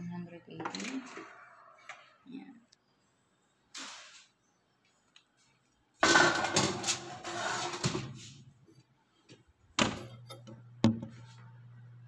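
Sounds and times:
metal baking tray scraping: 3.8s - 4.3s, 6.0s - 8.4s
oven fan humming: 6.1s - 12.0s.

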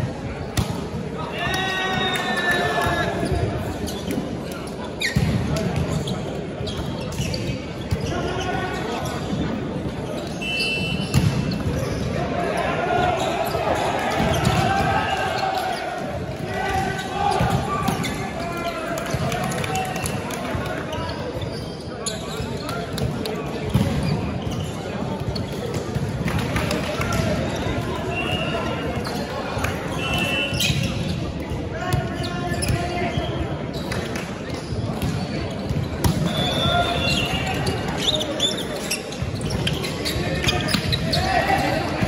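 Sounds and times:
spectators chatting: 0.0s - 42.0s
players shouting: 1.2s - 3.4s, 12.1s - 20.1s.

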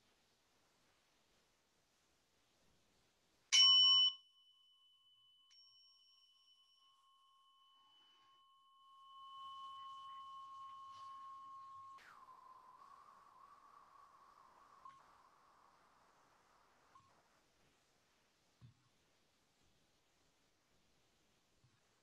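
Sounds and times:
meditation bell ringing: 3.5s - 13.0s
faint wavering tone: 3.6s - 17.4s.

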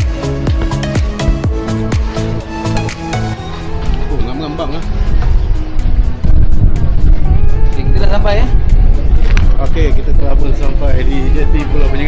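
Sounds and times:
background music: 0.0s - 12.0s
people talking: 9.6s - 12.0s.

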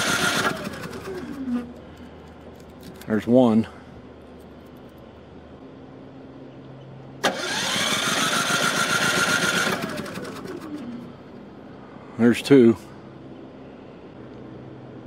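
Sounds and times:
generator engine cranking and failing: 0.0s - 2.0s, 7.2s - 11.2s.

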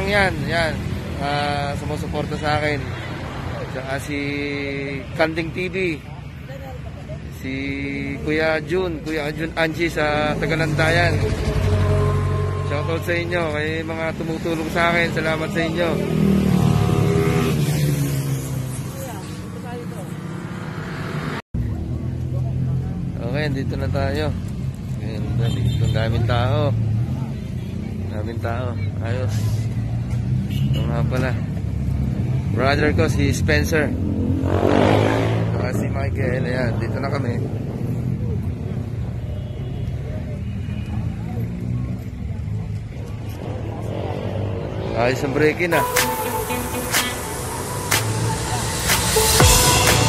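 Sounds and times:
steady engine hum: 42.4s - 50.0s.

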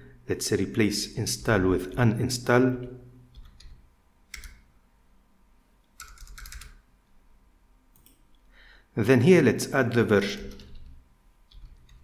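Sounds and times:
computer keyboard keystrokes: 3.3s - 4.7s, 6.0s - 6.8s, 10.4s - 12.0s.

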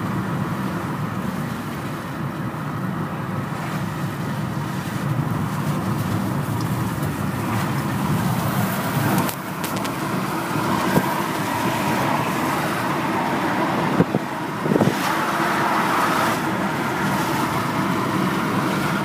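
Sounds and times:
road and engine noise in van: 0.0s - 19.0s.

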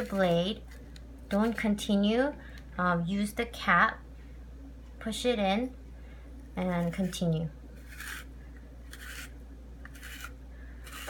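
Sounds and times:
spiral slicer scraping vegetable: 6.7s - 8.3s, 8.9s - 11.0s.

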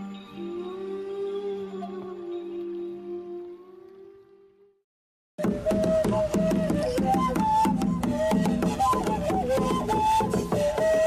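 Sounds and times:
flute melody: 0.0s - 4.8s, 5.4s - 11.0s
hand drum beat: 5.4s - 11.0s.

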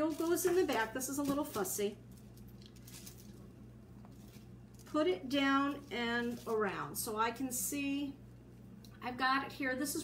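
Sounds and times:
fabric rustling: 0.0s - 5.0s
low steady hum: 0.0s - 10.0s.

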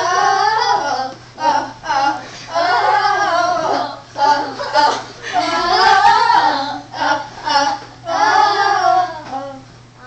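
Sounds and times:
girls singing together: 0.0s - 10.0s.

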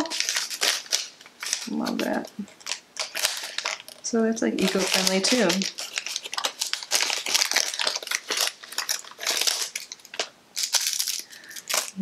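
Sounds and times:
plastic pouches crinkling: 0.0s - 12.0s.

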